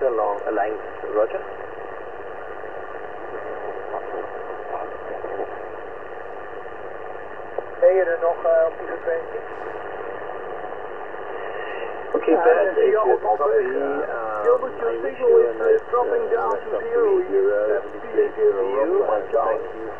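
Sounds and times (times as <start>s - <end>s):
radio static hiss: 0.0s - 19.9s
faint distant voice on radio: 3.2s - 5.6s.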